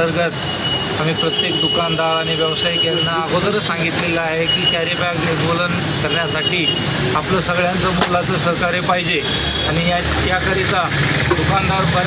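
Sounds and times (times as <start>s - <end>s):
man talking: 0.0s - 0.4s, 1.0s - 12.0s.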